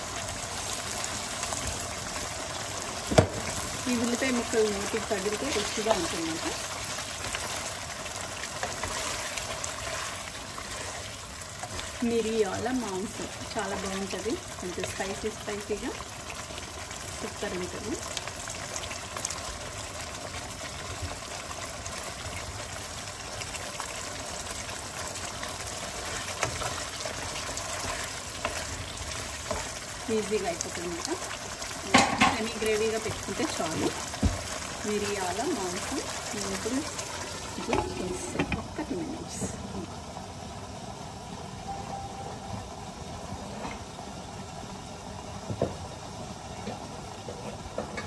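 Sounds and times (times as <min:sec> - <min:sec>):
curry bubbling in a pan: 0:00.0 - 0:41.3
pot simmering on a stove: 0:00.0 - 0:48.0.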